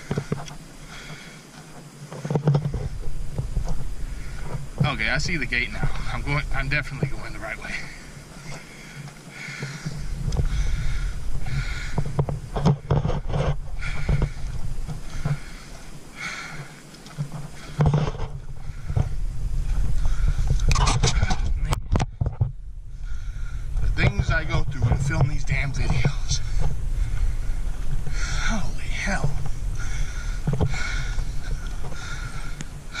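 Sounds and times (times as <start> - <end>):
footsteps crunching on gravel: 0.0 - 22.6, 23.5 - 33.0
wind rumbling on microphone: 0.0 - 33.0.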